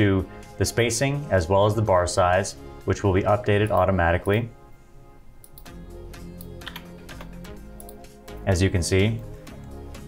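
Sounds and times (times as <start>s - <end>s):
soft background music: 0.0s - 10.0s
computer mouse clicks: 5.4s - 5.7s, 6.4s - 8.1s
keyboard keystrokes: 6.4s - 8.0s.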